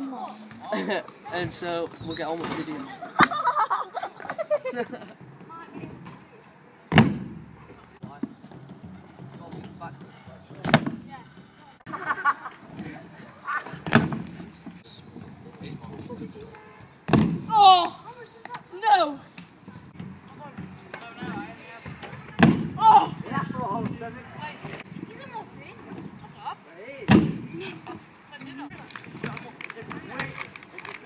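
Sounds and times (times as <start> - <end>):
boy shouting: 17.5 - 19.2, 22.2 - 23.8.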